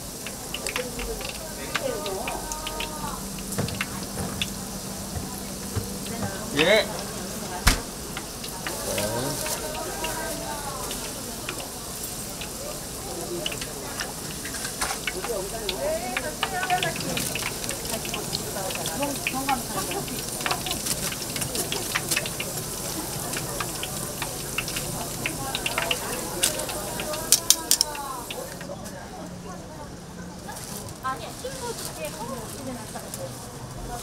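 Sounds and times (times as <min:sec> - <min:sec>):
deep-frying sizzle and pops: 0:00.0 - 0:29.2
metal tongs clicking: 0:25.6 - 0:28.0.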